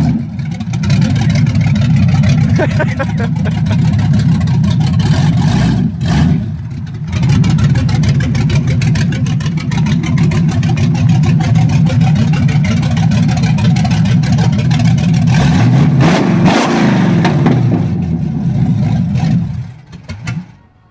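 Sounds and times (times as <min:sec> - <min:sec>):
car engine revving: 0:00.0 - 0:20.4.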